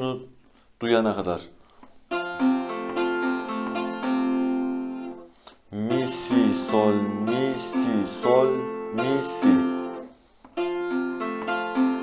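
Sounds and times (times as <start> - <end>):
plucked long-neck lute arpeggio: 2.1 - 5.3, 5.9 - 12.0.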